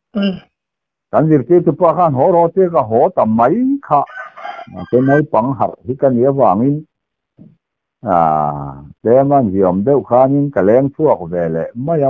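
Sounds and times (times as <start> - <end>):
person speaking: 0.2 - 0.4, 1.2 - 4.1, 4.7 - 6.8, 7.4 - 12.0
rooster crowing: 4.1 - 5.3.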